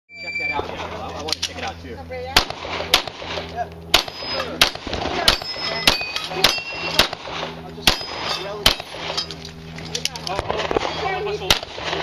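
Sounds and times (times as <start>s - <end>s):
high electronic beep: 0.1s - 0.7s, 4.1s - 4.6s, 5.3s - 7.0s
people talking: 0.2s - 8.9s, 9.8s - 11.6s.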